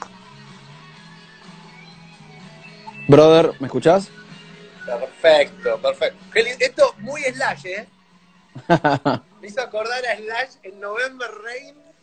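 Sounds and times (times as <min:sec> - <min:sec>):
faint guitar music: 0:00.0 - 0:12.0.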